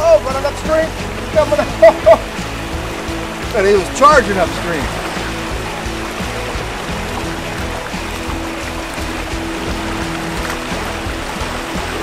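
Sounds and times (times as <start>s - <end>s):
background music sustained tones: 0.0s - 12.0s
creek water rushing: 0.0s - 12.0s.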